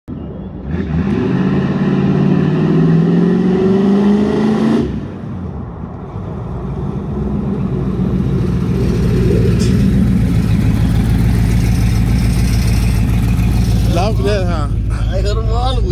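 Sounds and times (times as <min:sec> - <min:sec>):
car engine accelerating: 0:00.2 - 0:15.9
deep engine rumble: 0:04.8 - 0:15.9.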